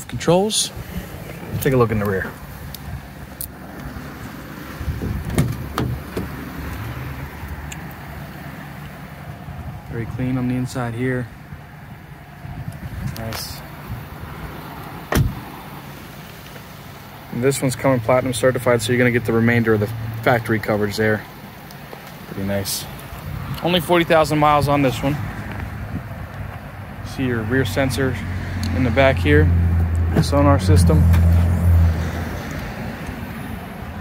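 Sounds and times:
car engine idling: 0.0 - 27.9
car door shutting: 5.0 - 6.4, 15.0 - 15.5.

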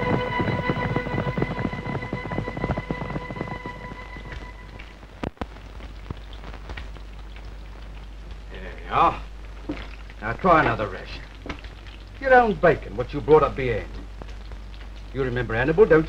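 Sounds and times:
orchestral music: 0.0 - 4.8
bacon sizzling in a frying pan: 4.8 - 16.0.

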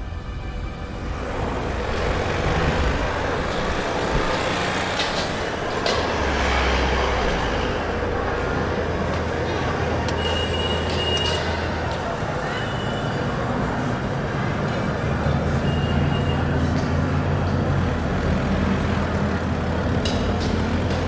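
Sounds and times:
road noise: 0.0 - 21.0
car and motorcycle engines: 0.8 - 21.0.

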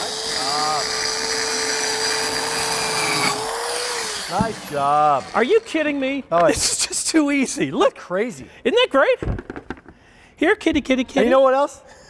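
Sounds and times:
circular saw whining: 0.0 - 6.1.

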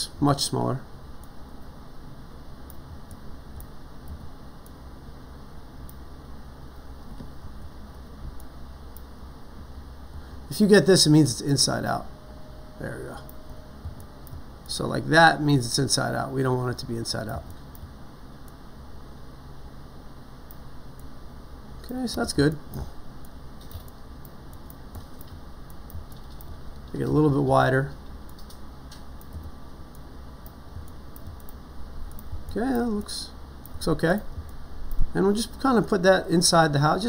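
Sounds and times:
steady low hum: 0.0 - 37.0
computer mouse clicks: 22.7 - 27.0, 28.2 - 32.6.

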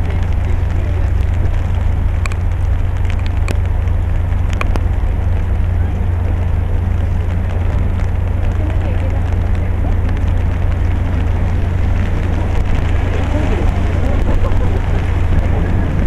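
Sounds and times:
rain hiss: 0.0 - 16.0
wind rumbling on microphone: 0.0 - 16.0.

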